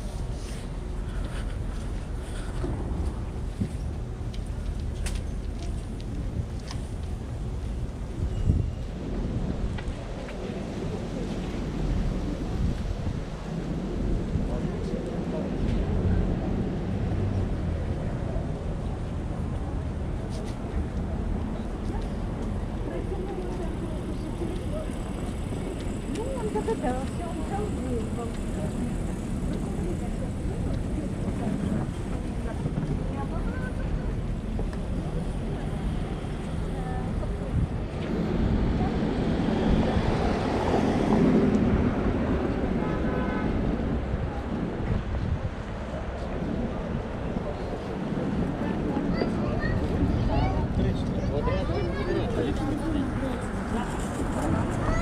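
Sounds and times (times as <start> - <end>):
passers-by talking: 0.0 - 55.0
road traffic rumble: 0.0 - 55.0.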